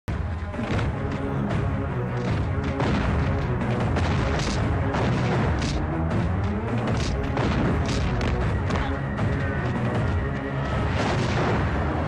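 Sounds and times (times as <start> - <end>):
dramatic orchestral score: 0.1 - 12.0
booming blast effects: 2.3 - 6.3, 6.9 - 8.8, 10.8 - 12.0.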